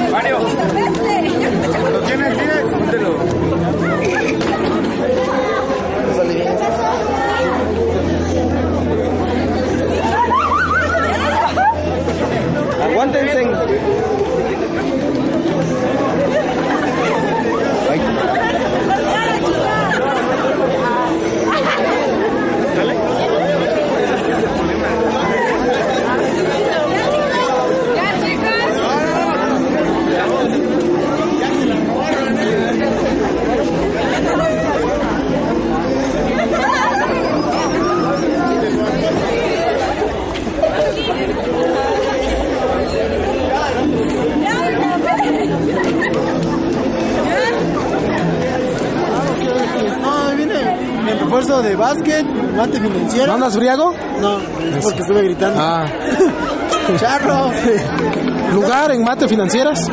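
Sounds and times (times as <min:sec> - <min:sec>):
group of people chattering: 0:00.0 - 0:59.9.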